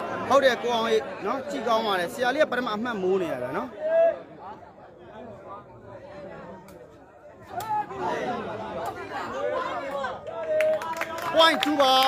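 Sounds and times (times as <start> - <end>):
crowd chattering: 0.0 - 12.0.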